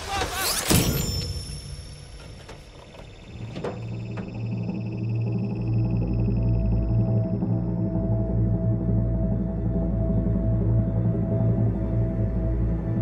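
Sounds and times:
low dark music drone: 1.3 - 13.0.

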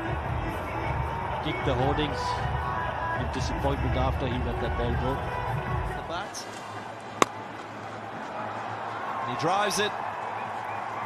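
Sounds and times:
cricket bat striking ball: 7.2 - 7.5.

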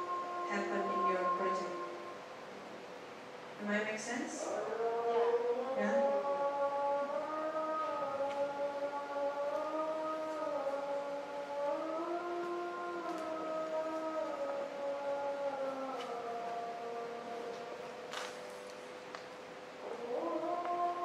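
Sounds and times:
woman singing held notes: 3.6 - 14.8.

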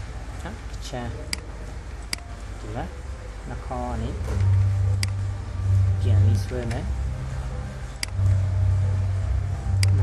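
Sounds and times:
low background hum: 0.0 - 10.0
computer mouse clicks: 4.4 - 5.2, 8.0 - 8.3, 9.8 - 10.0.

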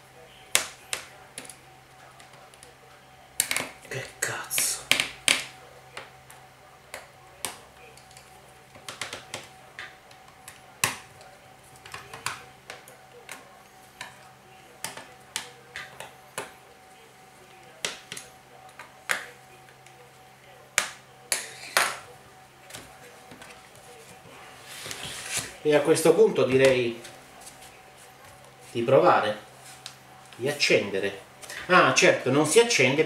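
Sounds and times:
faint steady hum: 0.0 - 33.0.

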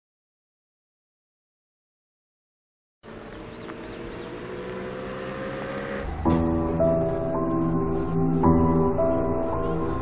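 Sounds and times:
bird chirping: 3.0 - 6.0
vehicle engine running: 3.0 - 6.6.

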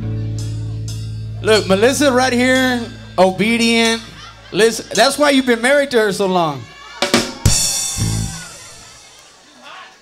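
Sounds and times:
faint crowd voices: 0.0 - 10.0
bass drum and cymbal hit: 7.0 - 9.0.

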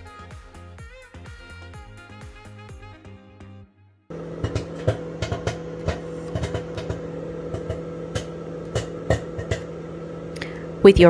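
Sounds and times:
popcorn kernels popping: 4.1 - 9.8
microwave oven humming: 4.1 - 11.0.

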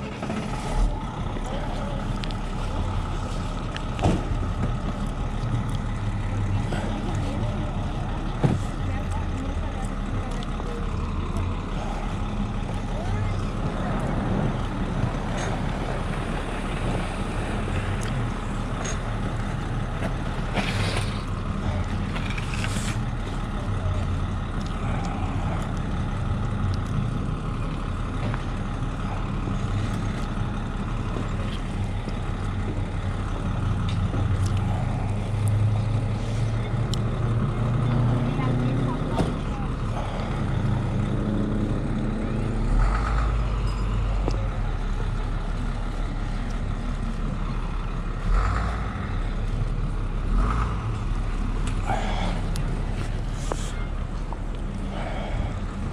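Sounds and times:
murmur of voices: 0.0 - 55.9
traffic rumble: 0.0 - 55.9
vehicle engine: 0.0 - 55.9.

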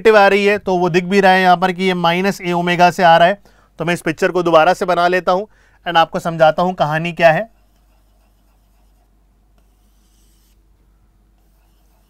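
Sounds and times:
drawing on a writing board: 7.5 - 10.6, 11.4 - 12.0.

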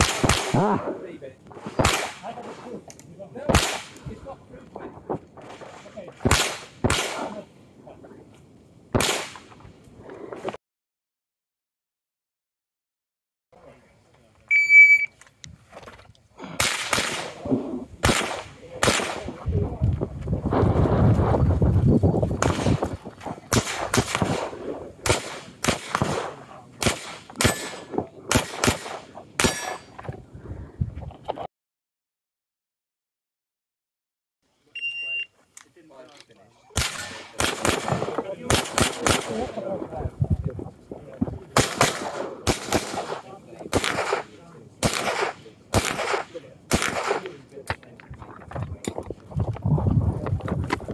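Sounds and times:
pistol shots with echo: 0.0 - 0.8, 1.6 - 2.3, 3.4 - 4.0, 5.4 - 7.4, 8.9 - 9.5, 16.5 - 17.4, 18.0 - 19.4, 22.4 - 22.9, 23.5 - 29.9, 36.8 - 39.6, 41.5 - 47.4
shot timer start beep: 14.5 - 15.1, 34.8 - 35.3
faint voices: 34.6 - 49.5.

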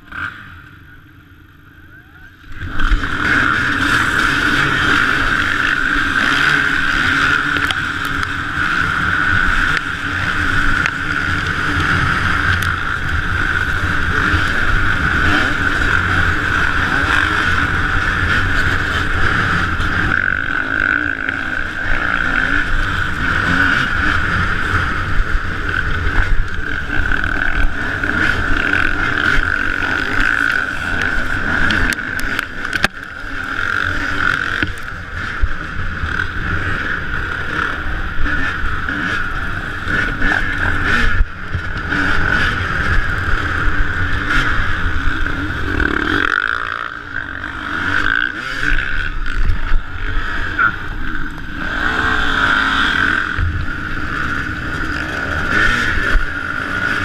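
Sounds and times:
dirt bike engines revving: 0.0 - 57.0
dirt bike riding over rough ground: 2.4 - 57.0.

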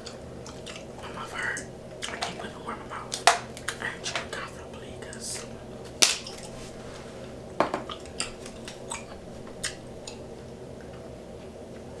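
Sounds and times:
bubble gum chewing: 0.0 - 6.8, 7.8 - 11.9.

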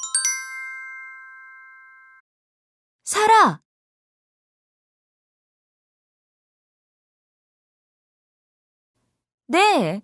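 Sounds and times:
bell-like chime ringing: 0.0 - 2.2.

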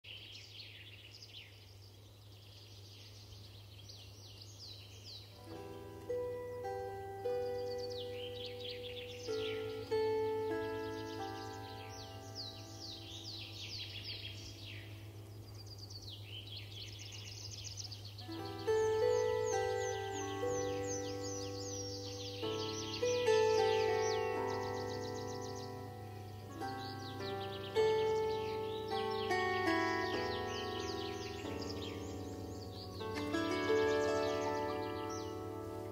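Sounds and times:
songbirds chirping: 0.0 - 35.9
plucked string melody: 5.2 - 35.9.

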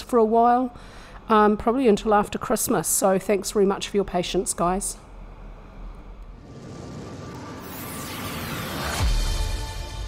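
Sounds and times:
low rumble: 5.1 - 9.6
whooshing: 6.3 - 10.0.

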